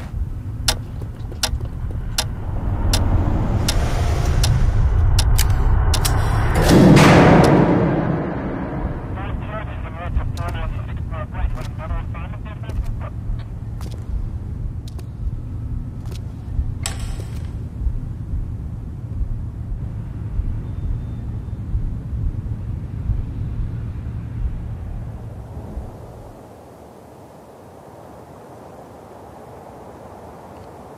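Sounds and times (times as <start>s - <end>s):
low rumbling drone: 0.0s - 26.6s
sharp clicks: 0.6s - 7.6s, 10.2s - 11.9s, 14.8s - 15.2s, 16.0s - 17.7s.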